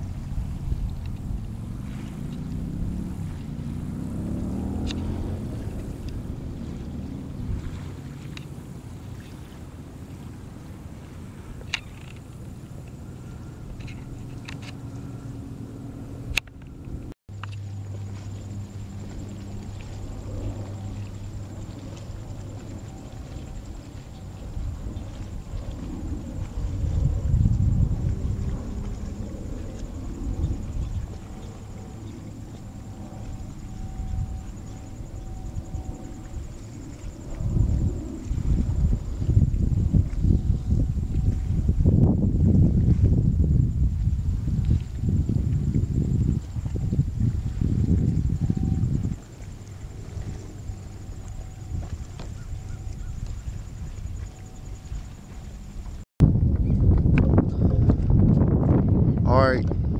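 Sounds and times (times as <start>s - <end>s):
gusty wind buffeting microphone: 0.0s - 59.9s.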